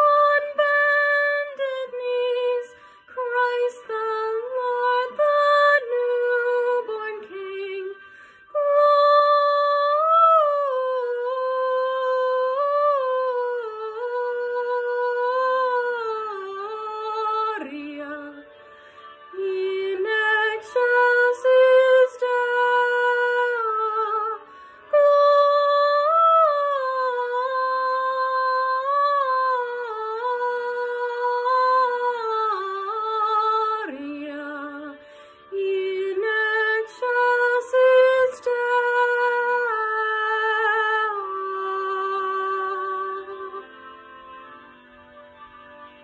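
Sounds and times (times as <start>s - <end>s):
woman singing unaccompanied: 0.0s - 8.0s, 8.6s - 18.4s, 19.4s - 43.6s.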